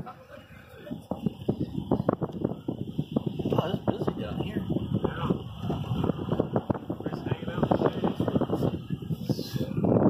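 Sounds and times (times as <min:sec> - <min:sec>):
wind: 0:00.0 - 0:10.0
low rumble: 0:01.0 - 0:10.0.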